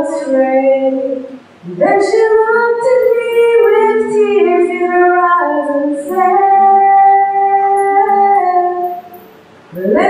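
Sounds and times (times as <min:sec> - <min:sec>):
woman singing gospel: 0:00.0 - 0:10.0.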